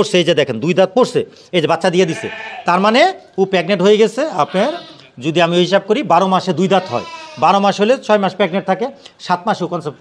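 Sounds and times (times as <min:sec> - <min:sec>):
sheep bleating: 0:02.0 - 0:02.8, 0:04.3 - 0:05.2, 0:06.6 - 0:07.6.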